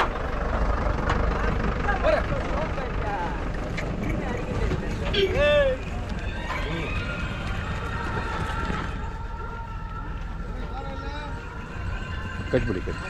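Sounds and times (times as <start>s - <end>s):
people's voices: 1.0s - 13.0s.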